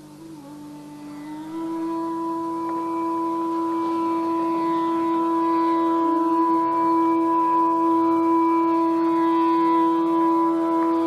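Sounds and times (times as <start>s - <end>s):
long held musical note: 0.0s - 11.0s.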